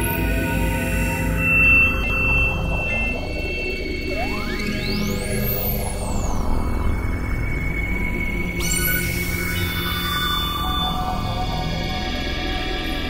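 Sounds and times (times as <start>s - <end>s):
low synthesizer drones: 0.0s - 9.1s
steady high synth tone: 4.0s - 6.9s
whistling synth sweep: 4.0s - 6.9s, 8.6s - 11.4s.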